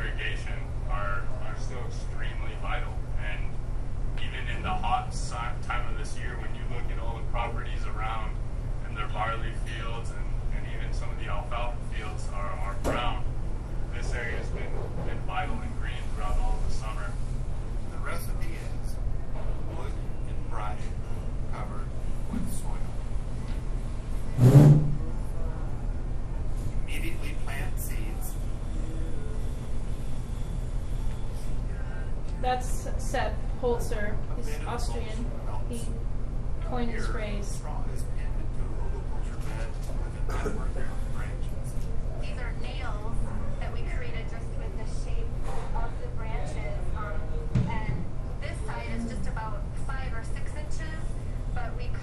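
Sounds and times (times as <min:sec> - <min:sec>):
steady low rumble: 0:00.0 - 0:39.4.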